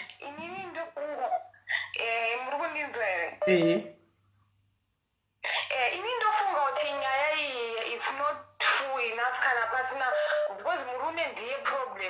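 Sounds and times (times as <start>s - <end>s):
woman's wavering voice: 3.4s - 3.9s.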